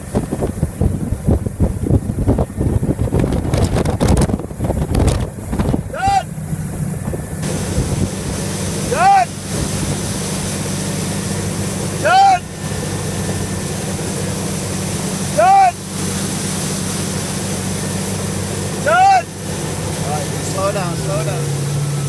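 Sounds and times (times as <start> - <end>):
boat engine drone: 0.0 - 22.0
rushing boat wake: 0.0 - 22.0
person calling out high-pitched: 5.9 - 6.3, 8.9 - 9.3, 12.0 - 12.5, 15.4 - 15.8.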